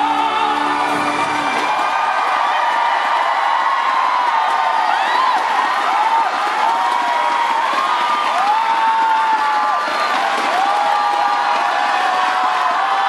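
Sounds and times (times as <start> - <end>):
crowd cheering and screaming: 0.0 - 13.0
high shouts: 0.0 - 13.0.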